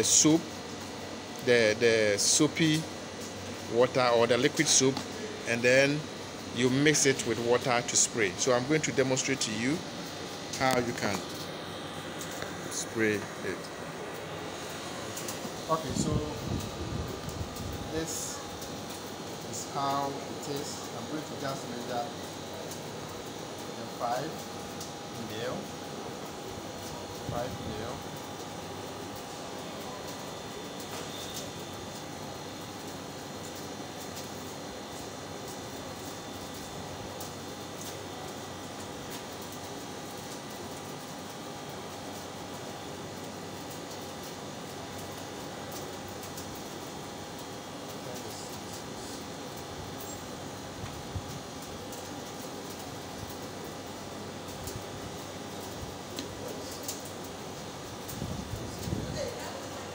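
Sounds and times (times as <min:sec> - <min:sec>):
faint constant whine: 0:00.0 - 0:59.9
steady background hum: 0:00.0 - 0:59.9.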